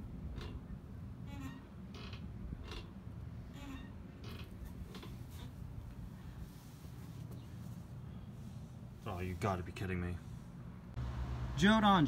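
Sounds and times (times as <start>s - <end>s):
rope hammock creaking: 1.2s - 6.0s.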